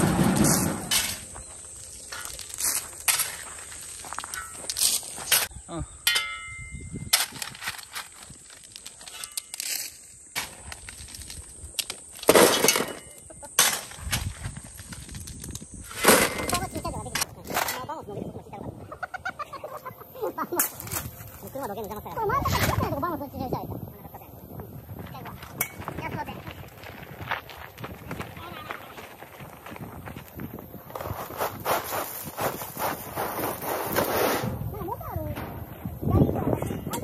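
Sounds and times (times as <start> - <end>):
stones clattering into wheelbarrow: 0.0 - 1.4, 2.1 - 5.5, 7.0 - 17.9
wheelbarrow pushed on gravel: 0.0 - 5.3, 14.2 - 17.1, 24.9 - 36.8
shovel scraping gravel: 0.0 - 5.5, 7.2 - 17.7, 30.9 - 34.7.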